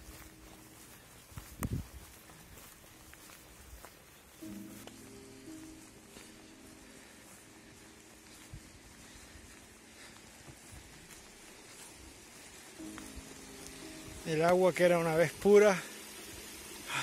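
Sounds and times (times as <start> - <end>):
water trickling: 12.2 - 17.0.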